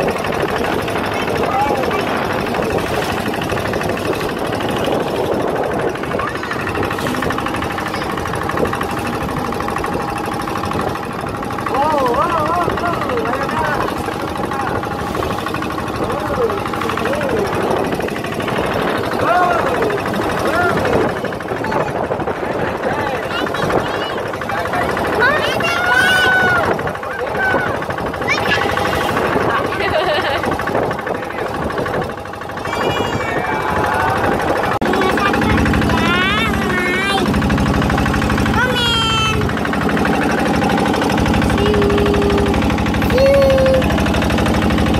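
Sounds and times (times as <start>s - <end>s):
motorboat engine chugging: 0.0s - 44.9s.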